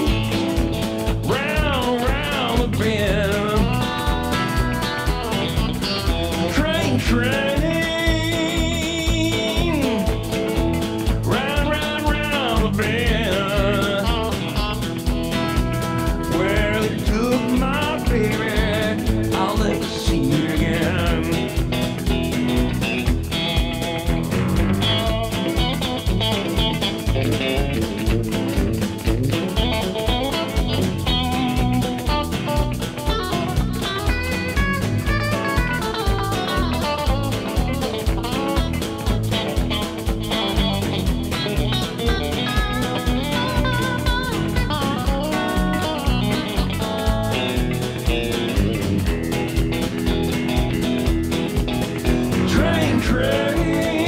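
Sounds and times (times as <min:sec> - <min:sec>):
band beat with drums: 0:00.0 - 0:54.0
electric guitar lead line: 0:00.0 - 0:54.0.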